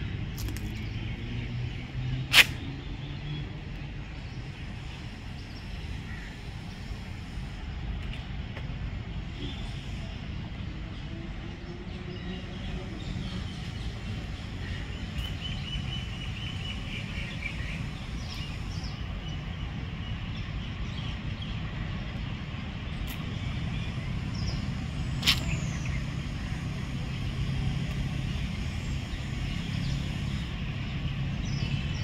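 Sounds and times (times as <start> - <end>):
distant traffic rumble: 0.0 - 32.0
sharp click: 2.3 - 2.6
small birds chirping: 11.6 - 32.0.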